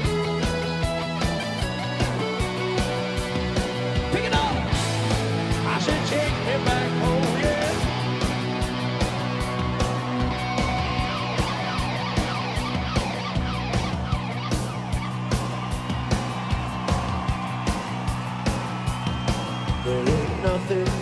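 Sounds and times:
electric guitar lead: 0:00.0 - 0:17.9
bass guitar: 0:00.0 - 0:21.0
driving drums: 0:00.0 - 0:21.0.

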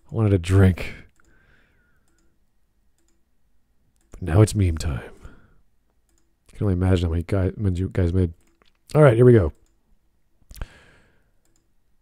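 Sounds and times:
computer mouse click: 0:02.0 - 0:02.4, 0:03.0 - 0:03.2, 0:06.0 - 0:06.3, 0:11.4 - 0:11.8.

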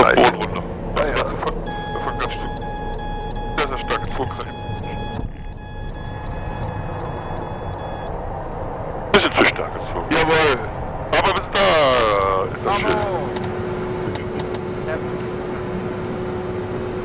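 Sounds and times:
bursts of voices: 0:00.0 - 0:02.6, 0:03.3 - 0:05.5, 0:09.1 - 0:13.4
steady high-pitched tone: 0:00.0 - 0:08.2
turboprop engine and cabin noise: 0:00.0 - 0:17.0.

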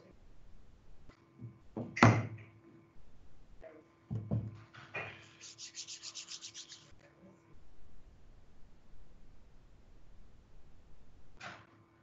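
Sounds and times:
hands rubbing together: 0:05.2 - 0:07.0.

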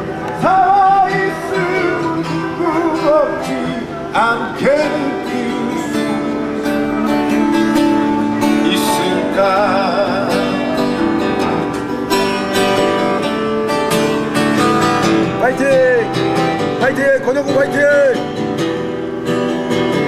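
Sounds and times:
person singing: 0:00.0 - 0:11.7
acoustic guitar strumming: 0:00.0 - 0:20.0.

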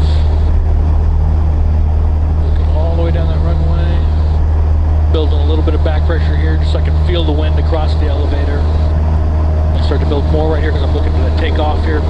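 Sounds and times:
airplane engine and propeller drone: 0:00.0 - 0:12.0.

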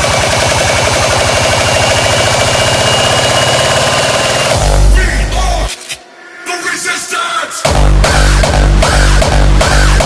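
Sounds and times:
distorted bass hits: 0:00.0 - 0:05.5, 0:07.6 - 0:10.0
dense synth noise: 0:00.0 - 0:06.9, 0:07.6 - 0:10.0.

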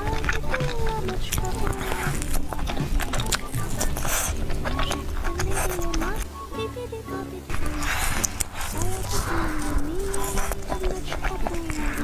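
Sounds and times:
chewing crispy fried chicken: 0:00.0 - 0:06.4, 0:07.5 - 0:12.0.

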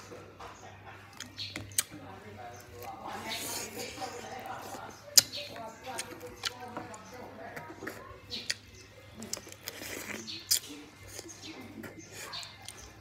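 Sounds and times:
wet smacking and chewing: 0:01.0 - 0:02.0, 0:02.6 - 0:13.0.

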